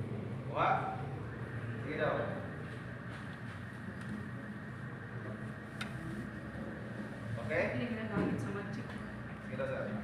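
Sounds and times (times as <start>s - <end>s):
indoor background hum: 0.0s - 10.0s.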